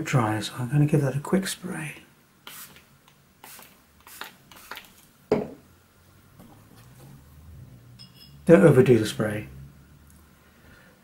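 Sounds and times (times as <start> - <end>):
spray bottle squirting puffs: 2.4 - 5.1.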